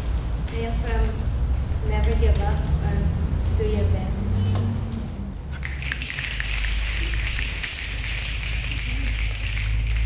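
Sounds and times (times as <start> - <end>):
small group applauding: 5.5 - 10.0.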